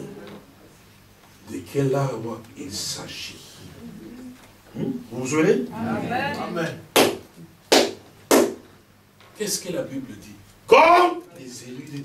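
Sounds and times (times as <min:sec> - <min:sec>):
hand claps with room echo: 0:06.9 - 0:08.8.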